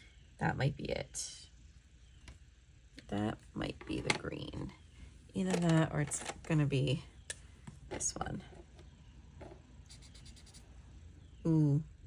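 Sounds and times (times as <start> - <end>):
marker scribbling on paper: 9.9 - 10.7.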